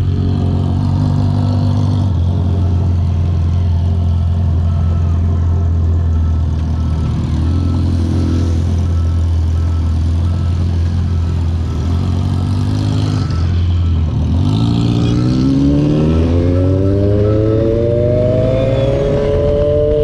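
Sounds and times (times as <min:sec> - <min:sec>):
motorcycle engines droning: 0:00.0 - 0:20.0.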